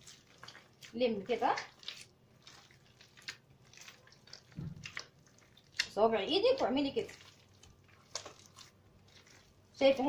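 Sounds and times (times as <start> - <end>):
hands kneading sticky dough: 0.0 - 10.0.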